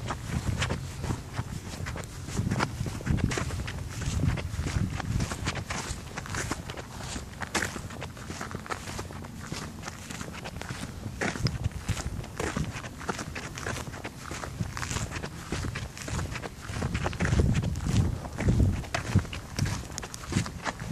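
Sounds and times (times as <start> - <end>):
footsteps walking: 0.0 - 20.9.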